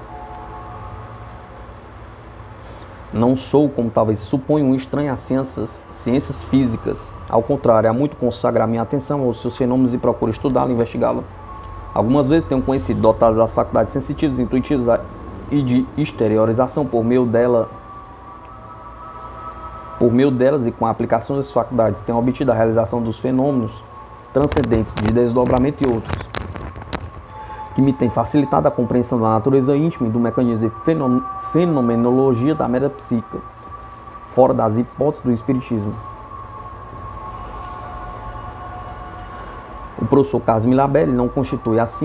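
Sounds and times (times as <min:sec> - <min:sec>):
background noise: 0:00.0 - 0:42.0
faint high whine: 0:00.0 - 0:42.0
quiet background hum: 0:00.0 - 0:42.0.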